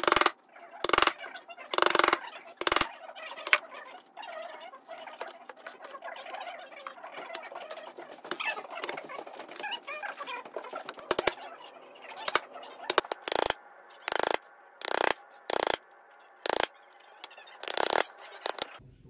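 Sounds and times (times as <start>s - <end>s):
chisel cutting wood: 0.0s - 1.2s, 1.8s - 3.6s, 10.8s - 11.4s, 12.2s - 15.8s, 16.4s - 16.7s, 17.6s - 18.8s.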